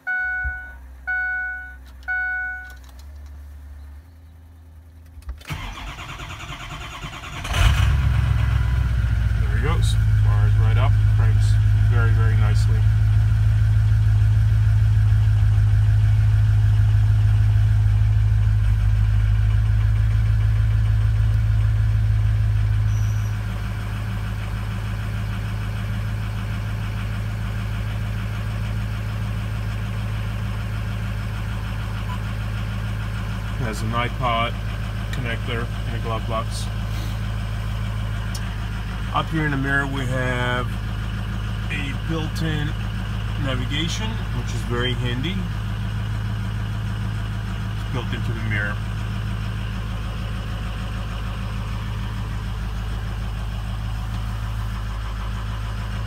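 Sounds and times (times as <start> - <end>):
diesel engine idling: 0.0 - 56.0
diesel engine starting: 4.9 - 56.0.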